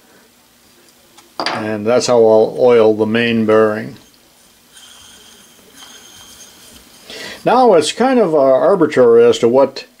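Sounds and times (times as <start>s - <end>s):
flywheel whirring: 2.4s - 8.1s.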